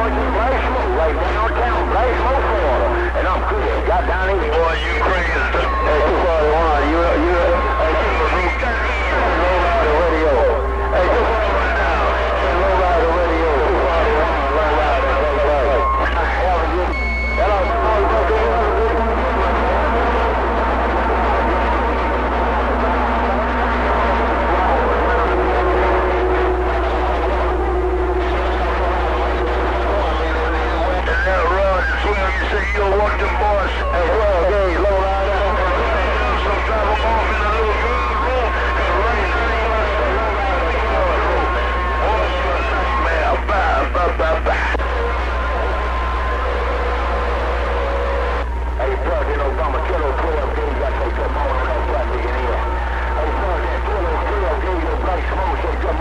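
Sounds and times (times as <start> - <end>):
constant low hum: 0.0 - 56.0
garbled radio voices: 0.0 - 56.0
radio whistle tones: 0.0 - 56.0.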